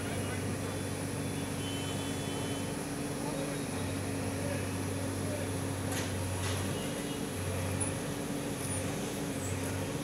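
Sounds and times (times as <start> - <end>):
street background noise: 0.0 - 10.0.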